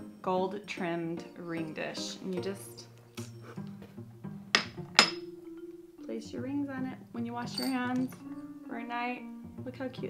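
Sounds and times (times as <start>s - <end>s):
background music: 0.0s - 10.0s
sharp clinks of ceramic dish: 4.6s - 5.3s, 7.5s - 8.2s.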